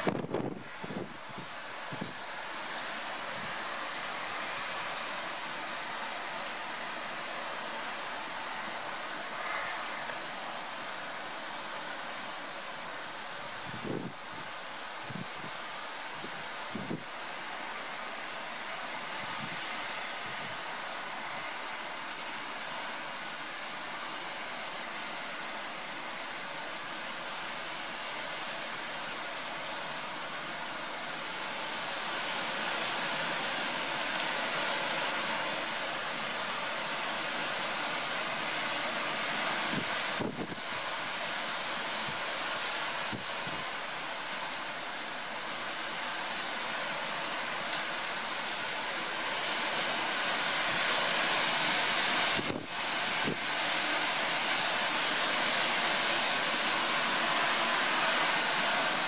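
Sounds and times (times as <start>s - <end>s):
strong wind through trees: 0.0s - 59.0s.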